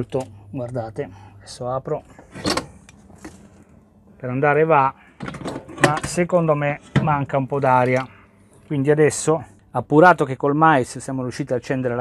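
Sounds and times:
boiler humming faintly: 0.0 - 12.0.

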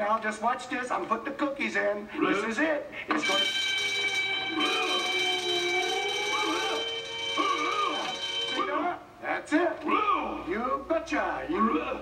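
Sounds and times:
high-pitched electronic alarm tone: 3.2 - 9.0
voice howling: 4.5 - 9.0.

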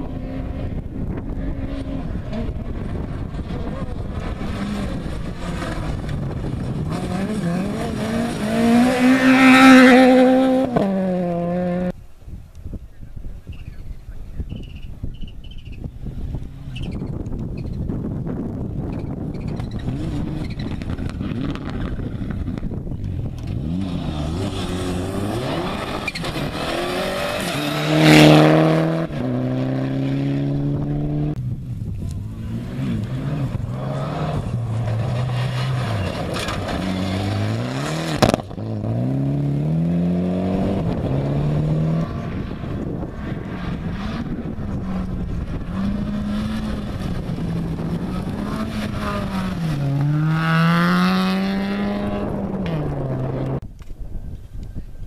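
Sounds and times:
rally car engines revving: 0.0 - 12.0, 15.4 - 53.6
gravel and tyre noise: 0.0 - 55.0.

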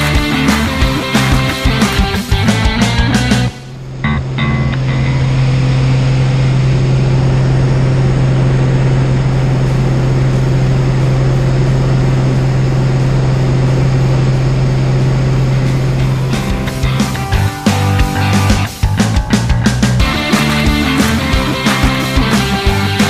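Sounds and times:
small plane engine drone in cabin: 0.0 - 23.0.

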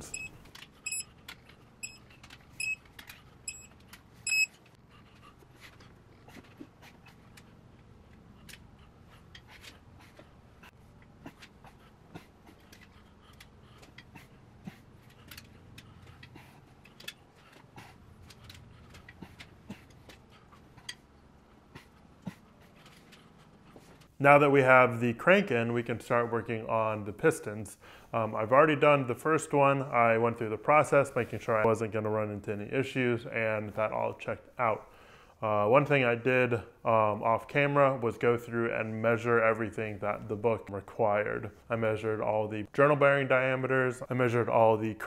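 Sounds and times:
short high beeps: 0.0 - 1.1, 3.5 - 3.7, 4.3 - 4.6.

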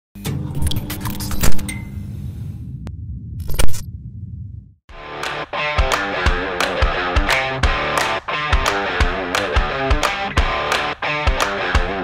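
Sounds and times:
steady low rumble: 1.8 - 4.8.

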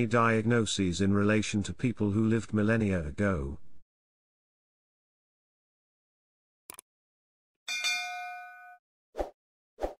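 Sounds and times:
notification bell ding: 7.7 - 8.8.

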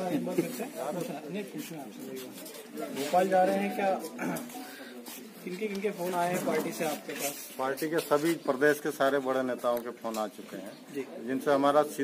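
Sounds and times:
men talking indistinctly: 0.0 - 12.0.

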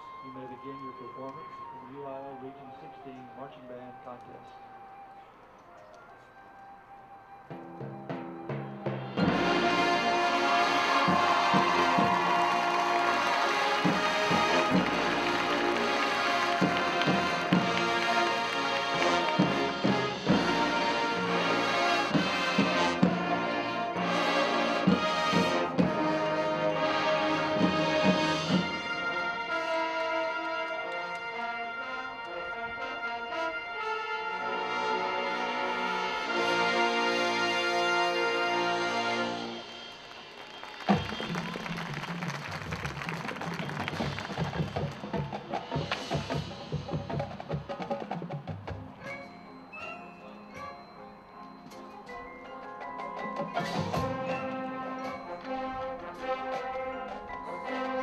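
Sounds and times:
marching band playing: 0.0 - 49.7, 52.3 - 58.0.

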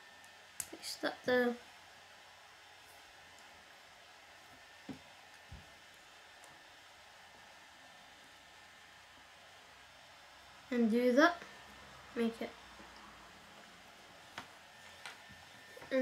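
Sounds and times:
faint steady hiss: 0.0 - 16.0.

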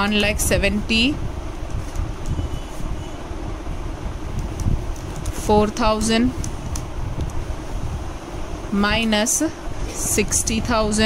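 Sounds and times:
fan air buffeting microphone: 0.0 - 11.0.

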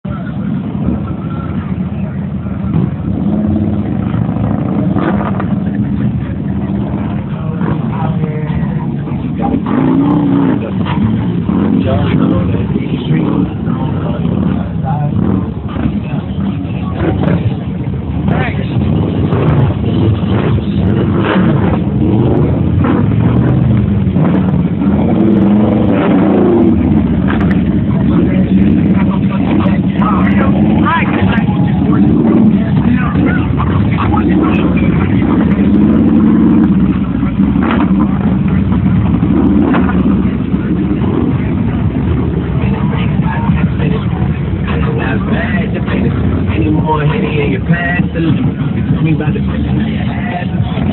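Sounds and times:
motorcycles riding by revving: 0.1 - 50.9.

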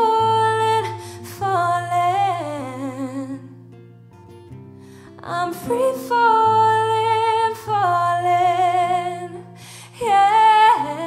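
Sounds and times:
woman singing with vibrato: 0.0 - 3.5, 5.2 - 11.0
acoustic guitar: 0.0 - 11.0.

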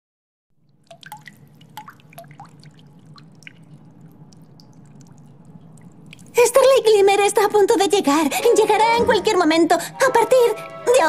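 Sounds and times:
water dripping: 0.6 - 7.9
low steady hum: 0.6 - 11.0.

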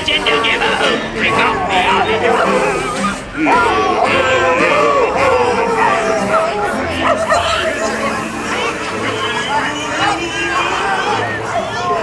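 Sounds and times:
recorded voices shouting: 0.0 - 12.0
dog barking: 6.9 - 8.7.

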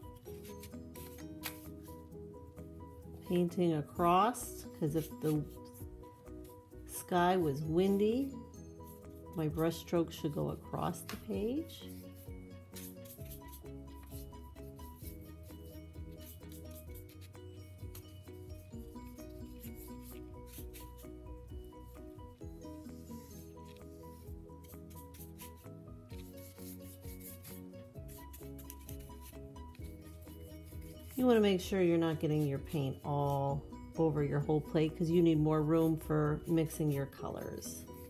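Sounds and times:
soft background music: 0.0 - 38.0
paintbrush swishing on paper: 0.2 - 2.1, 3.4 - 18.2, 18.8 - 33.7.

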